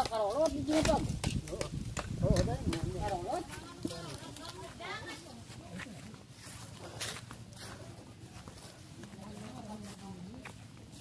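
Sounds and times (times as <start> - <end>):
people talking: 0.0 - 6.3, 7.7 - 11.0.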